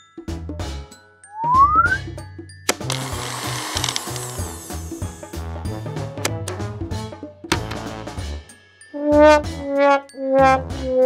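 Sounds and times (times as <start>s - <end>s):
toy blender click: 2.7s - 4.7s
toy blender whirring and rattling: 2.7s - 5.0s
background music with bass line: 4.3s - 11.0s.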